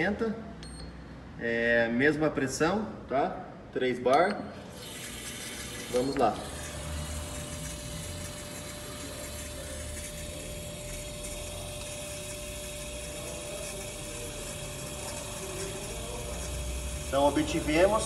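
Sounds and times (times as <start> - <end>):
injector spraying fluid: 4.6 - 18.0
pump running: 4.7 - 18.0.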